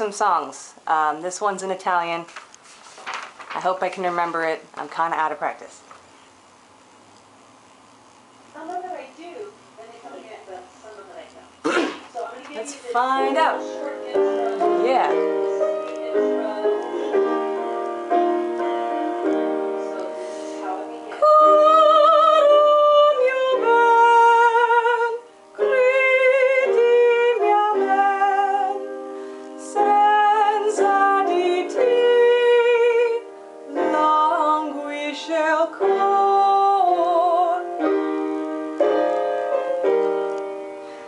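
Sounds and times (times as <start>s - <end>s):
woman singing with vibrato: 12.7s - 17.6s, 20.5s - 29.0s, 29.6s - 37.9s
piano accompaniment: 12.9s - 41.0s.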